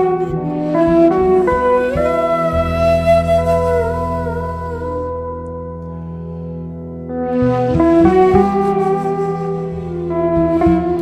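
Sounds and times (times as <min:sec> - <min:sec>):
bamboo flute melody: 0:00.0 - 0:05.5, 0:07.1 - 0:11.0
low acoustic bass notes: 0:00.0 - 0:11.0.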